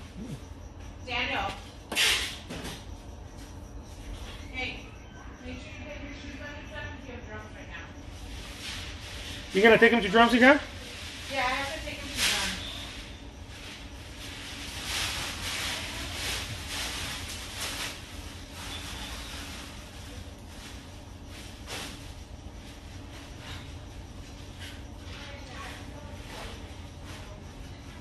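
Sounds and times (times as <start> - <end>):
low steady hum: 0.0 - 28.0.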